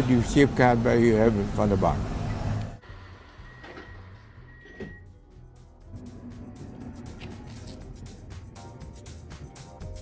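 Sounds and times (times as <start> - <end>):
train hum: 5.4 - 9.5.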